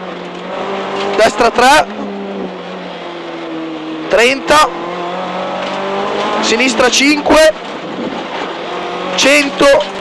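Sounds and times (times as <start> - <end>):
car engine under load: 0.0 - 10.0
road and wind noise: 0.0 - 10.0.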